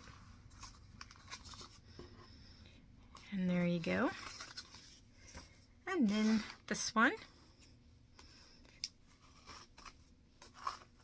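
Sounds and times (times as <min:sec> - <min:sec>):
faint paper rustling: 0:00.0 - 0:11.0.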